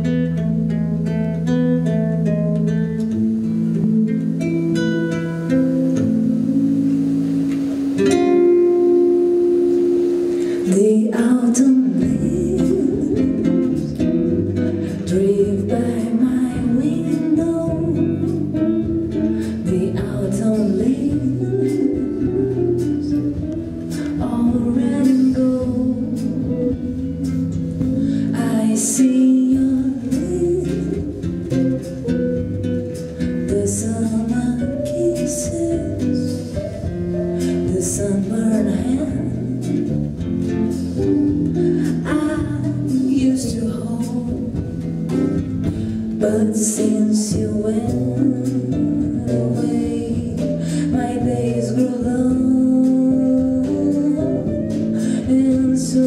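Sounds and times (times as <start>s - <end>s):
acoustic guitar: 0.0s - 56.0s
live band playing: 0.0s - 56.0s
woman singing: 8.0s - 32.2s, 33.0s - 56.0s
low bass notes: 12.0s - 56.0s.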